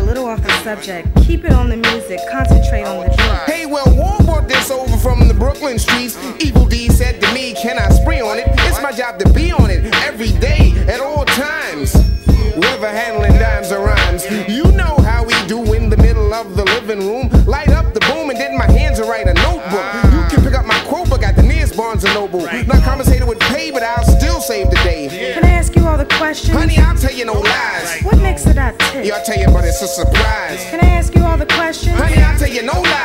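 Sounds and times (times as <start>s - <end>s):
rapping over a drum beat: 0.0s - 33.0s.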